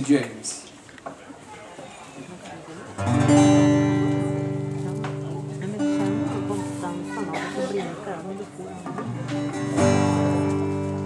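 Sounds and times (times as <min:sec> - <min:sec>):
acoustic guitar strumming chords: 0:03.0 - 0:11.0.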